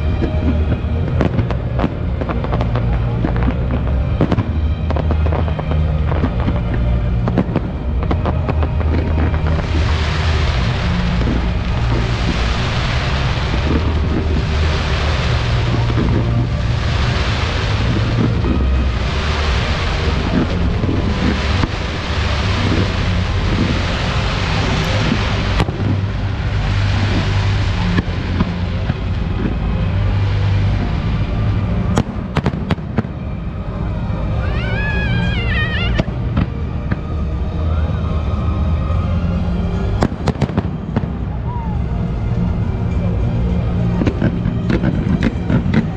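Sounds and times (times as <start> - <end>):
fireworks bursting: 0.0 - 31.1, 31.8 - 33.2, 40.0 - 41.4
music with heavy bass: 0.0 - 45.9
fireworks bangs: 0.1 - 29.6, 40.0 - 41.3.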